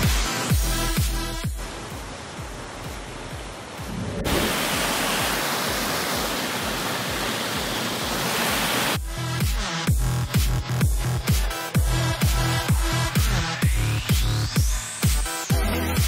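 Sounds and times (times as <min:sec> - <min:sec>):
electronic dance music: 0:00.0 - 0:01.5, 0:06.6 - 0:16.0
water rushing over boulders: 0:00.0 - 0:09.7.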